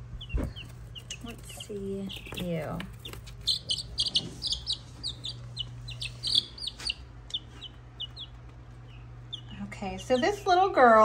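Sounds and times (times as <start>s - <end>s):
chicks peeping: 0.0s - 11.0s
steady low hum: 0.0s - 11.0s.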